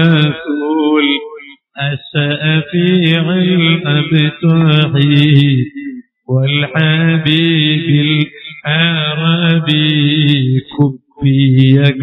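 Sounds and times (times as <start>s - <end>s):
man chanting devotional verses: 0.0s - 12.0s.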